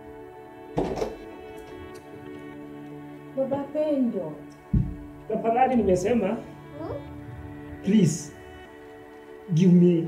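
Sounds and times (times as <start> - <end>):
music with sustained tones: 0.0 - 10.0.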